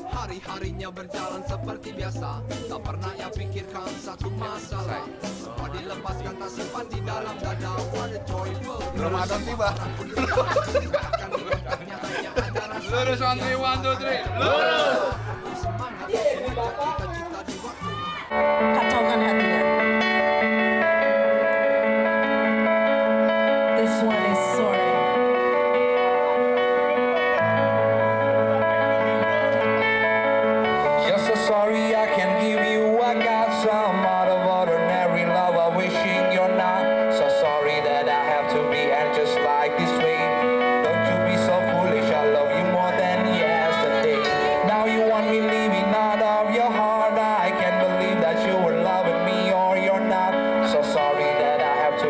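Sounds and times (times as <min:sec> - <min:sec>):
bass line: 0:00.0 - 0:36.6
guitars playing long held notes: 0:17.8 - 0:52.0.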